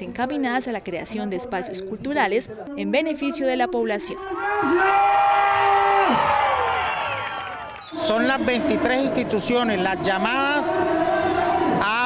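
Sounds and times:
crowd noise: 0.0s - 12.0s.

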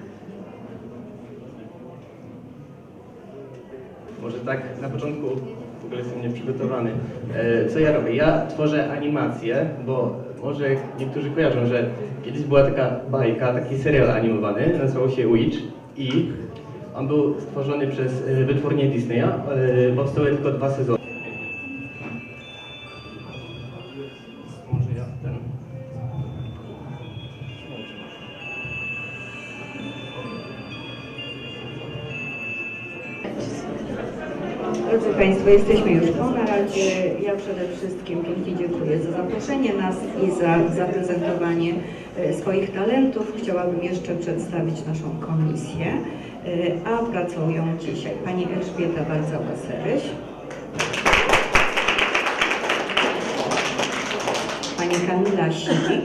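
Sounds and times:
audience clapping: 50.5s - 55.6s.

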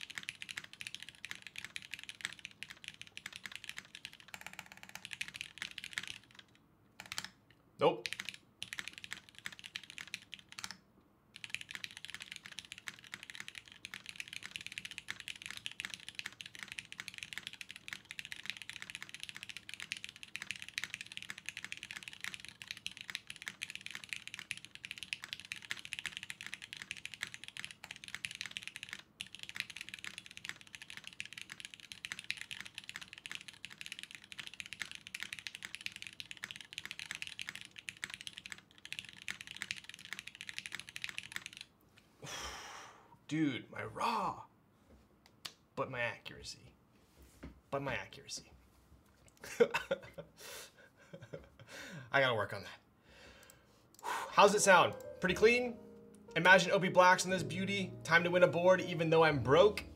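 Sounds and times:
mechanical keyboard typing: 0.0s - 7.4s, 8.0s - 10.8s, 11.4s - 41.7s.

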